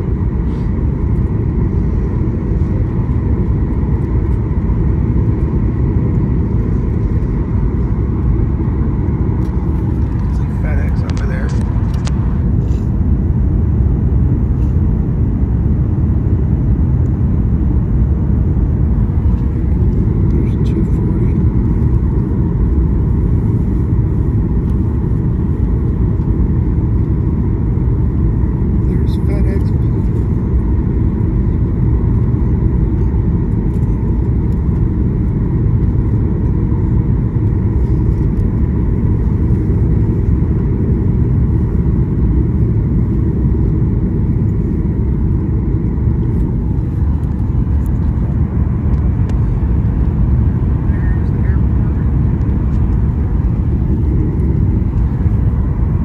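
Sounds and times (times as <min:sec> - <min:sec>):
jet airliner cabin noise: 0:00.0 - 0:56.0.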